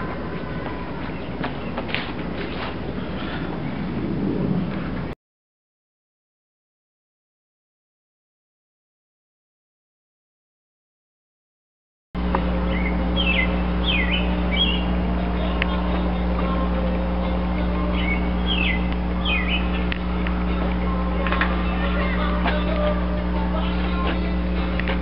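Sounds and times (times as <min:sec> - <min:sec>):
low machine hum: 0:00.0 - 0:05.2, 0:12.2 - 0:25.0
small birds chirping: 0:00.1 - 0:03.5, 0:12.4 - 0:16.6, 0:17.2 - 0:24.3.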